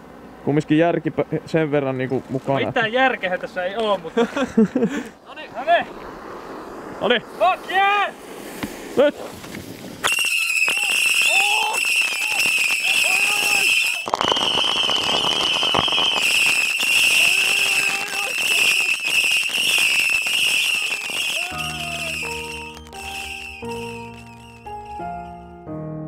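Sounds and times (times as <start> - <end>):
firework crackling: 4.7 - 25.4
whistling firework shriek: 10.0 - 25.4
background music: 21.5 - 26.0.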